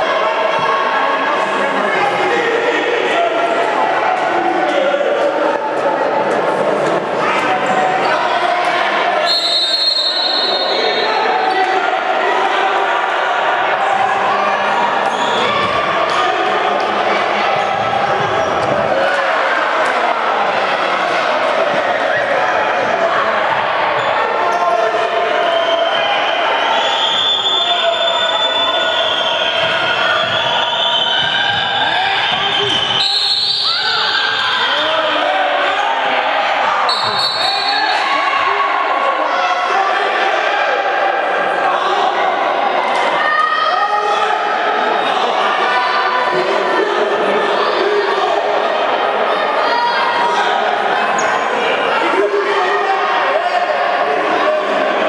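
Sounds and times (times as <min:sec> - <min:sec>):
people shouting: 0:07.4 - 0:48.6.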